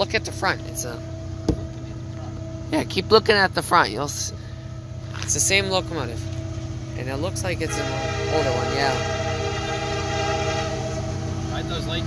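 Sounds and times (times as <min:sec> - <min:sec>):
low rumble of train: 0:00.0 - 0:12.0
locomotive air horn blast: 0:07.6 - 0:11.8.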